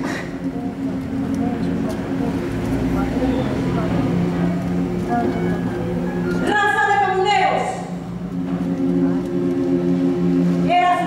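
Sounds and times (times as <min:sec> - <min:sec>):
choir holding low chord: 0:00.0 - 0:06.4, 0:07.8 - 0:11.0.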